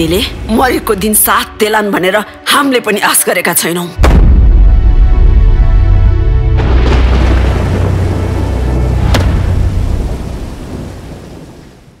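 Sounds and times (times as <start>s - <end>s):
deep rumbling boom: 4.0s - 11.6s.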